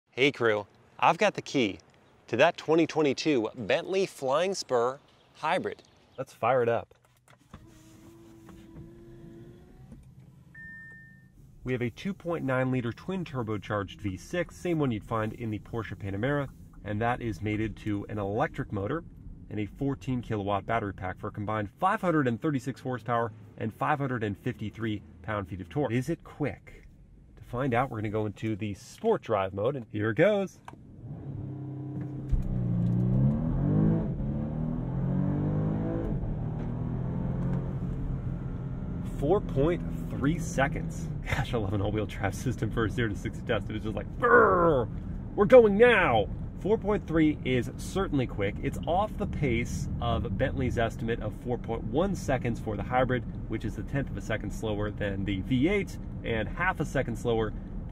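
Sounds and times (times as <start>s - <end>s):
road rumble: 0.1s - 57.9s
car engine accelerating: 7.8s - 10.5s, 30.8s - 57.9s
faint steady electronic tone: 10.5s - 11.5s.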